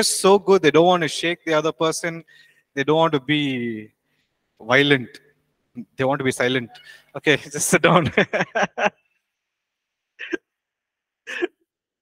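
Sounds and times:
man laughing: 7.8 - 9.0.

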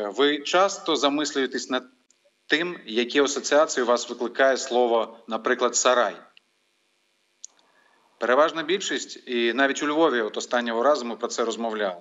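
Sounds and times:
faint clicks: 7.4 - 7.7.

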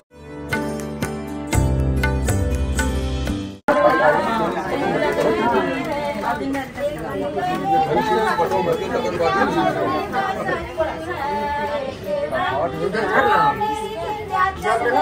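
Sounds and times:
background music: 0.1 - 4.2
women chattering: 3.7 - 15.0.

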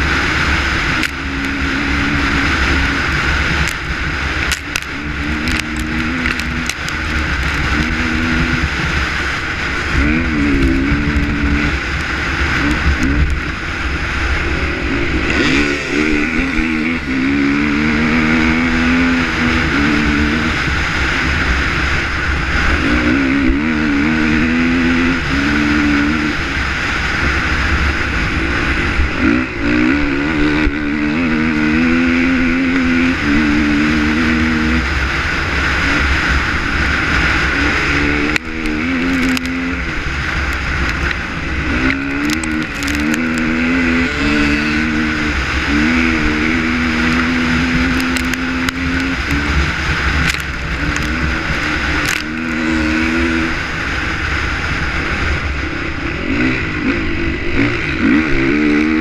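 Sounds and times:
dirt bike engine revving hard: 0.0 - 59.0
heavy wind rushing: 0.0 - 59.0.

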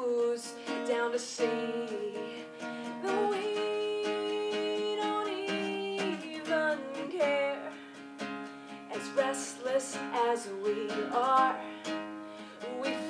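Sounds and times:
woman singing: 0.0 - 7.9, 8.7 - 13.0
acoustic guitar strumming: 0.0 - 13.0.

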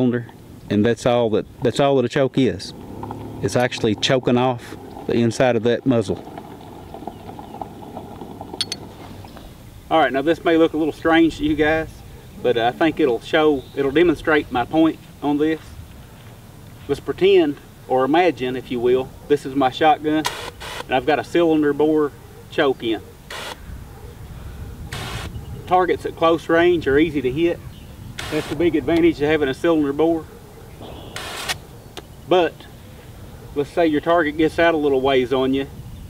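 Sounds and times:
low outdoor background noise: 0.0 - 36.0
hose nozzle water spray bursts: 24.9 - 25.3, 28.2 - 28.6.

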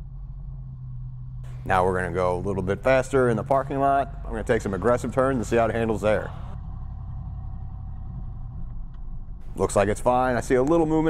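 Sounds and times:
car engine: 0.0 - 11.0
road noise: 1.4 - 11.0.

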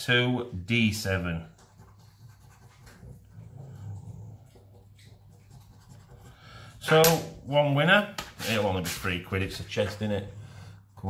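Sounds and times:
coin scratching a scratchcard: 1.6 - 3.0, 5.0 - 6.9.

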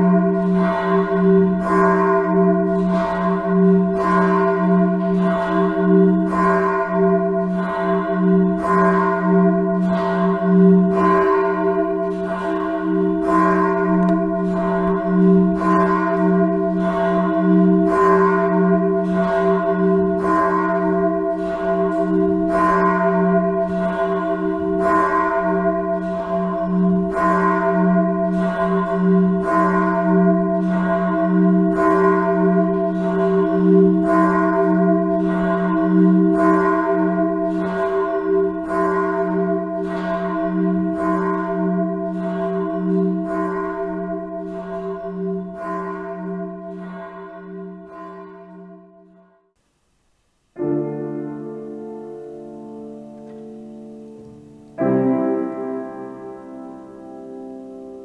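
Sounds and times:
church bell tolling: 0.0 - 49.5, 50.6 - 58.0.

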